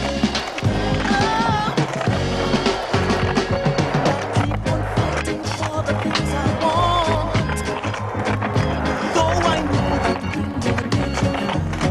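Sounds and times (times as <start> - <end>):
music with steady beat: 0.0 - 11.9
skateboard clacking: 0.0 - 11.9
skateboard rolling on pavement: 0.0 - 11.9.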